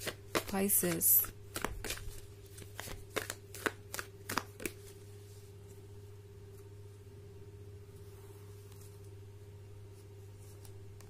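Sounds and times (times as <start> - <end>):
cards being shuffled by hand: 0.0 - 5.8.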